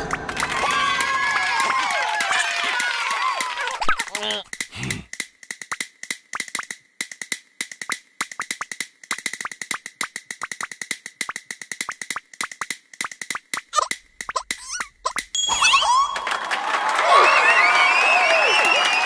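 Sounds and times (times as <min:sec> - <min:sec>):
sharp percussive taps and clicks: 0:03.8 - 0:15.4
short squeaky pitch glide: 0:13.8 - 0:16.4.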